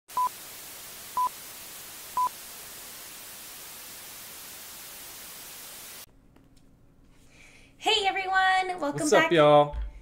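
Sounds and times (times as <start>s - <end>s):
tv static hiss: 0.1s - 6.1s.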